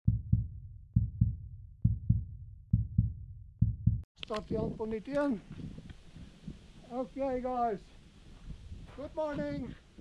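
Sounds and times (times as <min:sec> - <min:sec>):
heartbeat-like low double thumps: 0:00.1 - 0:06.7.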